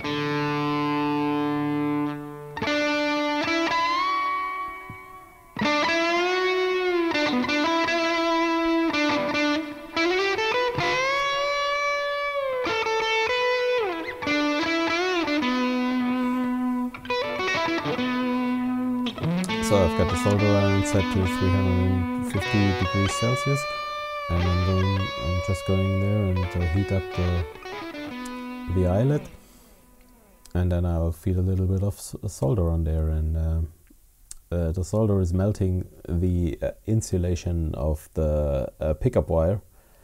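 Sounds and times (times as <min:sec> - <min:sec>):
electric guitar lead melody: 0:00.0 - 0:30.5.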